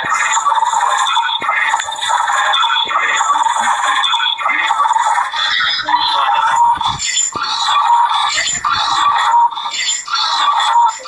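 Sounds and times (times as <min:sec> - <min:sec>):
choppy cartoon music and effects: 0:00.0 - 0:11.0.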